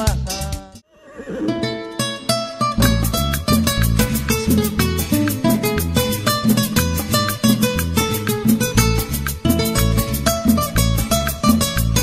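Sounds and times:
live band music: 0:02.8 - 0:12.0.

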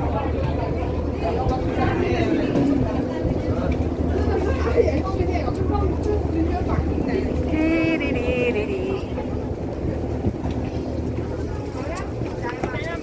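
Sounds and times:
crowd chatter: 0:00.0 - 0:13.0
ferry engine humming: 0:00.0 - 0:13.0.

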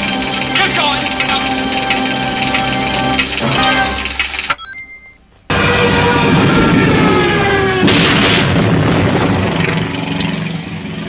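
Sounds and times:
film music: 0:00.0 - 0:05.2
short high electronic beeps: 0:00.4 - 0:01.5, 0:02.6 - 0:05.2.

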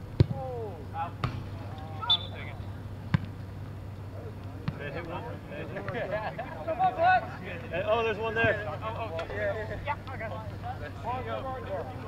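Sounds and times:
steady low hum: 0:00.0 - 0:12.0
soccer ball being kicked: 0:00.1 - 0:00.5, 0:01.2 - 0:01.6
players shouting in the distance: 0:00.2 - 0:02.8.

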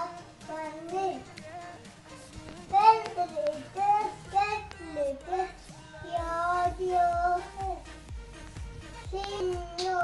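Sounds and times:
girl singing: 0:00.0 - 0:07.9, 0:09.0 - 0:10.0.

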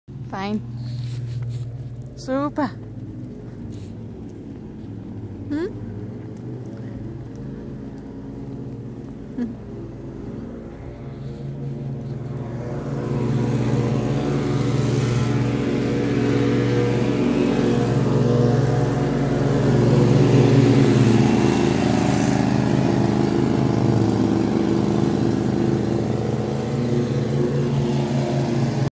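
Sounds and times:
motor engine running: 0:00.1 - 0:28.9.

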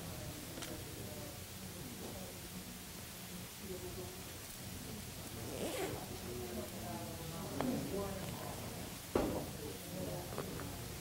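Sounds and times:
quiet chatter: 0:00.0 - 0:11.0
bag zipper rasp: 0:05.5 - 0:06.0.

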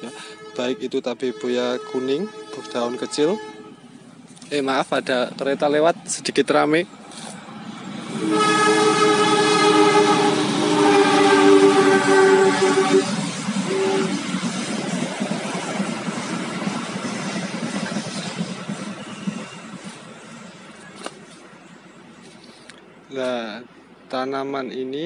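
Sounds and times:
train horn blast: 0:00.0 - 0:04.0, 0:08.0 - 0:14.3
train rumbling by: 0:00.0 - 0:25.0.

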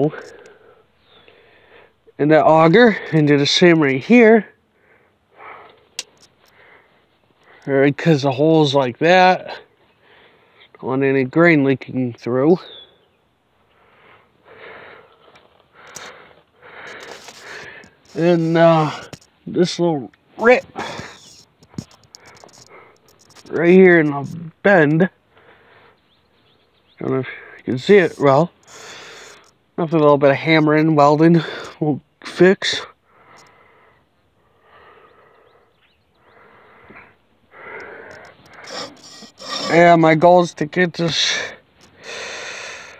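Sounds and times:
person breathing: 0:00.1 - 0:02.0, 0:04.7 - 0:07.7, 0:09.9 - 0:10.7, 0:13.7 - 0:18.2, 0:20.7 - 0:21.5, 0:25.3 - 0:26.0, 0:28.6 - 0:29.5, 0:33.0 - 0:39.7, 0:41.9 - 0:42.9.

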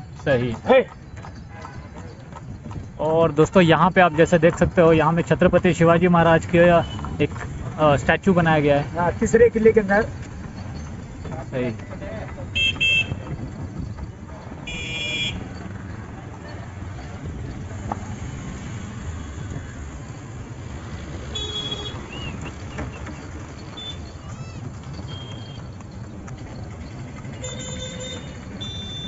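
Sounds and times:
traffic rumble: 0:00.0 - 0:29.0
vehicle horn toots: 0:06.8 - 0:07.2, 0:12.5 - 0:13.3, 0:14.6 - 0:15.5, 0:21.2 - 0:22.5, 0:25.1 - 0:25.6, 0:27.4 - 0:29.0.

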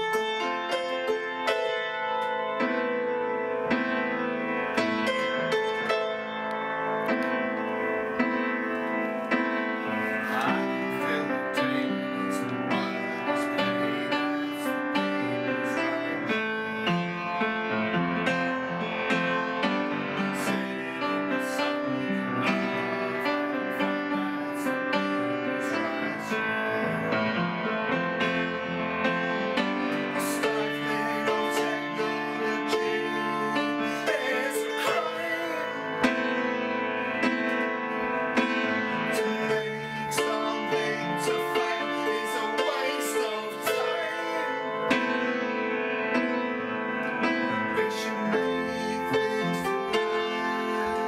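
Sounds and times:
upright piano playing: 0:00.0 - 0:51.0
man singing: 0:10.0 - 0:17.8, 0:19.6 - 0:27.8, 0:29.6 - 0:36.2, 0:38.9 - 0:45.0, 0:47.4 - 0:51.0.

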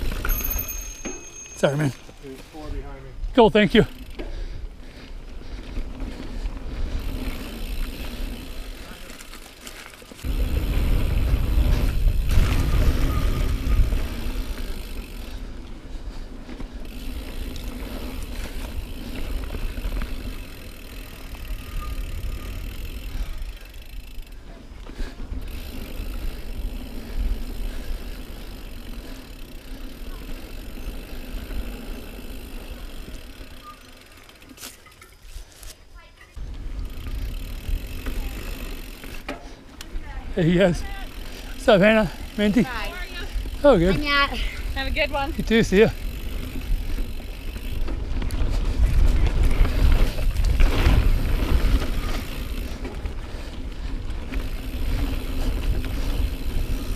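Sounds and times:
bike rattling over bumps: 0:00.0 - 0:56.9
bike tyres crunching over dirt: 0:00.0 - 0:56.9.

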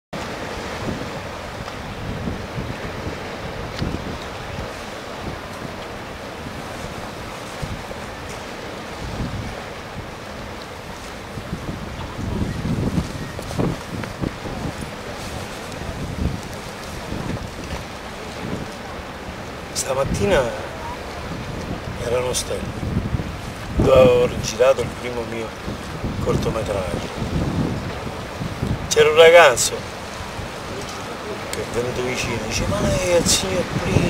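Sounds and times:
sea water washing against rocks: 0:00.2 - 0:34.0
wind buffeting microphone: 0:00.2 - 0:34.0.

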